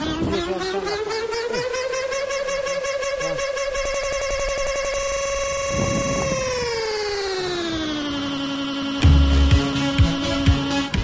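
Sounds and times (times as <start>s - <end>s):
buzzy synthesizer tone sliding down: 0.0s - 11.0s.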